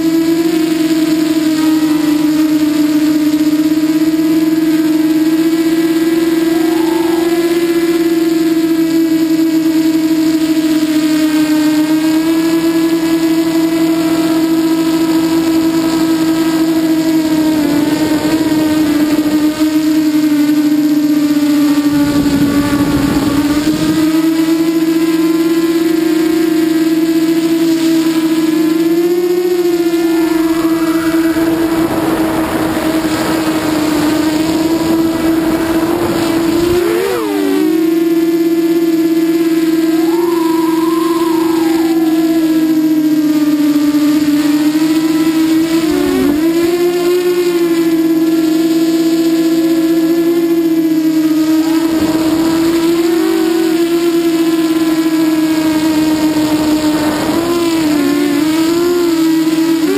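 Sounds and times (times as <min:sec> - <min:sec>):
drone motors whining: 0:00.0 - 0:59.9
wind noise: 0:21.9 - 0:24.2, 0:30.4 - 0:37.2.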